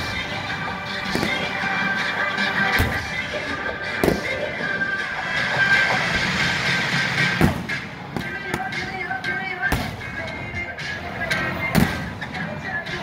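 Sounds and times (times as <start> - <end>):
fireworks banging: 1.0 - 1.7, 3.9 - 4.6.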